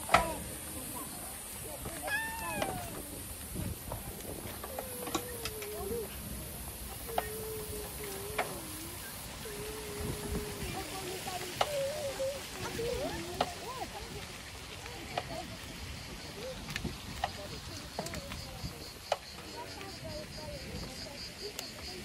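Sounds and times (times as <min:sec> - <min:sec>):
bicycle rolling over paving: 0:00.0 - 0:21.0.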